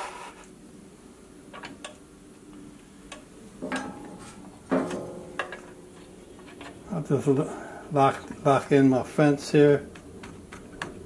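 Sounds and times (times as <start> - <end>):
wood knocks and scrapes on metal: 3.6 - 6.8.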